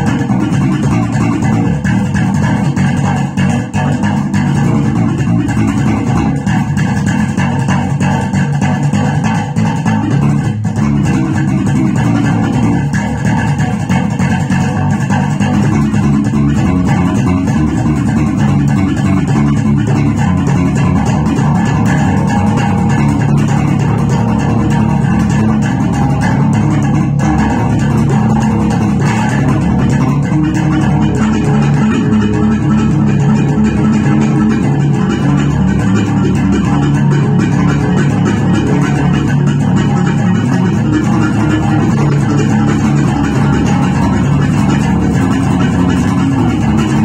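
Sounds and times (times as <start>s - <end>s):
electric bass guitar groove: 0.0s - 47.0s.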